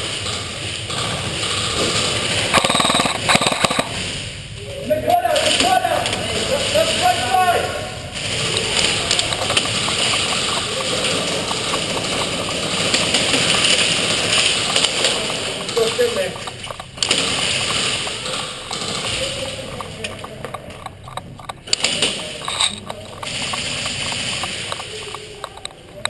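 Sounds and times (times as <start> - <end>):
indistinct voices in noisy din: 0.0 - 26.0
small clicks: 2.5 - 4.0, 8.2 - 26.0.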